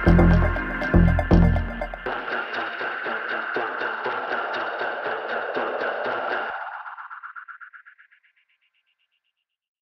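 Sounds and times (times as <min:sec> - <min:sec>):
layered synths: 0:00.0 - 0:07.3
pulsing electronic rhythm: 0:00.0 - 0:08.4.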